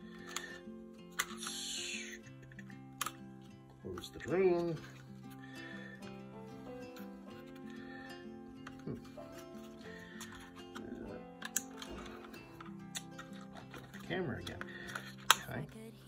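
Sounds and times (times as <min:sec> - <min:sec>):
background music of held chords: 0:00.0 - 0:16.0
plastic clicks from toy handling: 0:00.1 - 0:01.7, 0:02.3 - 0:03.2, 0:10.2 - 0:15.6.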